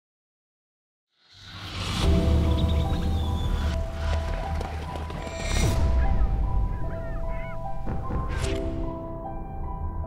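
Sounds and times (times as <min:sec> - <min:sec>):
low droning trailer music: 0:01.3 - 0:10.0
waterbird calls: 0:02.2 - 0:08.4.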